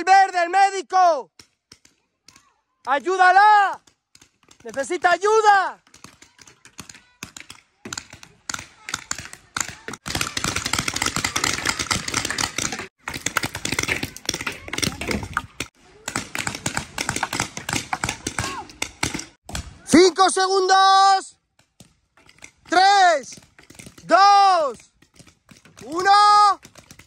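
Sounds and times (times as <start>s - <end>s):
paintball guns firing: 1.3s - 19.9s, 21.6s - 27.0s.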